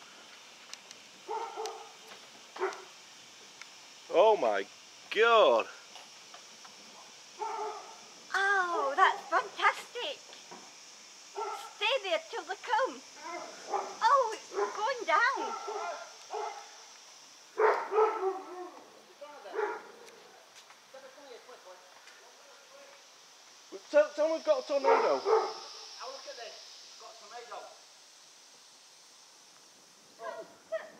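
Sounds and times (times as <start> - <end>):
dog barking and whining: 1.3 - 2.0, 2.6 - 2.9, 7.4 - 8.0, 11.4 - 11.8, 13.2 - 16.7, 17.6 - 18.8, 24.8 - 25.6, 30.2 - 30.9.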